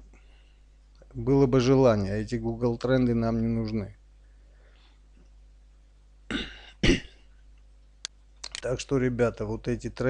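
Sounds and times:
man coughing: 0:06.3 - 0:07.2.

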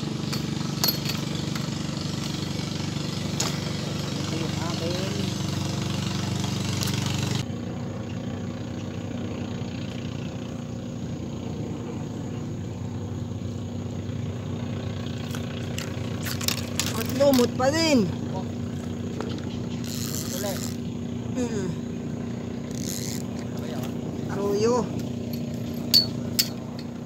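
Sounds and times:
engine humming: 0:00.0 - 0:27.0
person crying out: 0:21.4 - 0:21.9.

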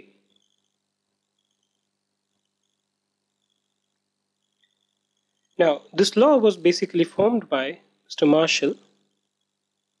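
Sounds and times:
faint high-pitched tones: 0:00.0 - 0:10.0.

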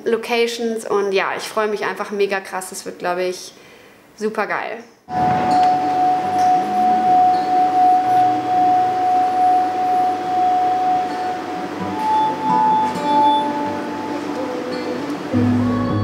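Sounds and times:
wine glass rims ringing: 0:05.1 - 0:15.3
instruments playing: 0:05.1 - 0:16.0.

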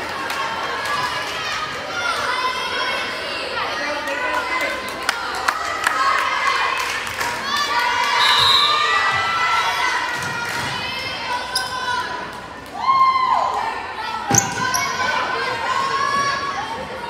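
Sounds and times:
people calling out and chattering: 0:00.0 - 0:17.0.

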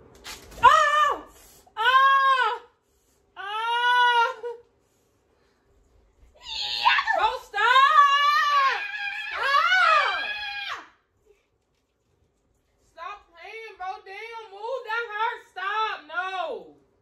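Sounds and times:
woman screaming: 0:06.4 - 0:10.9.

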